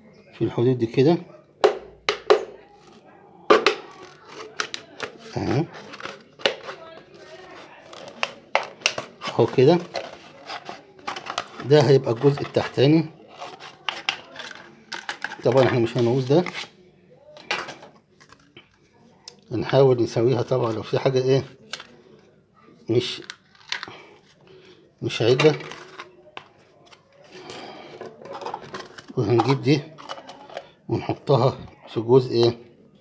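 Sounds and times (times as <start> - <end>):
plastic rustling and rubbing: 3.8 - 16.8, 25.1 - 30.7.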